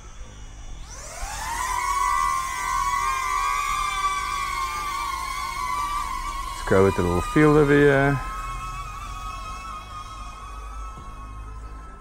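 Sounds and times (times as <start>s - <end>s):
drone propellers whining: 0.0s - 12.0s.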